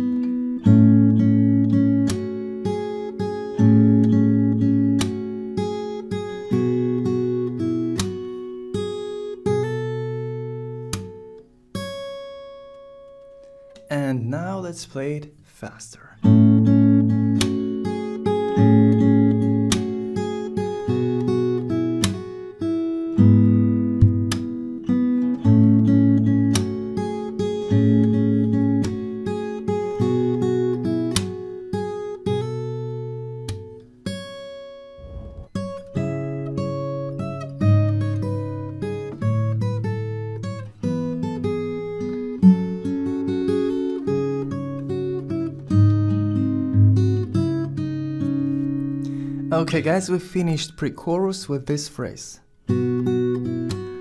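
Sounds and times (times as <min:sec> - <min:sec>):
fingerstyle acoustic guitar: 0:00.0 - 0:54.0
percussive slaps on guitar strings: 0:05.0 - 0:05.3, 0:17.3 - 0:17.8, 0:19.7 - 0:20.0, 0:22.0 - 0:22.3, 0:24.0 - 0:24.7, 0:26.5 - 0:26.8, 0:31.1 - 0:31.4.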